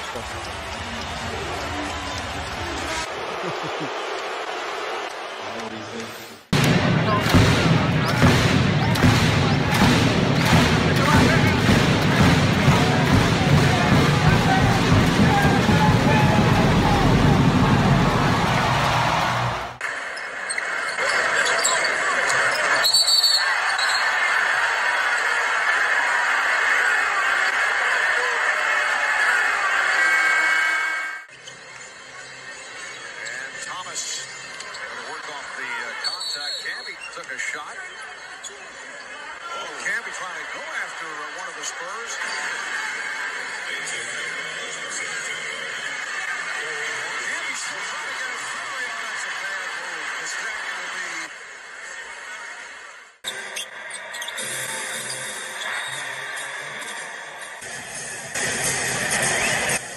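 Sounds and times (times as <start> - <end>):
crowd noise: 0.0 - 59.9
players' voices: 0.0 - 59.9
music with a steady beat: 6.6 - 17.6.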